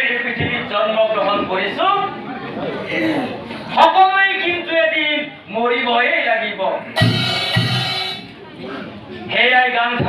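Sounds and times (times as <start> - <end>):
man speaking into a microphone: 0.0 - 2.1, 3.7 - 7.0, 9.3 - 10.0
sharp hit: 7.0 - 8.3.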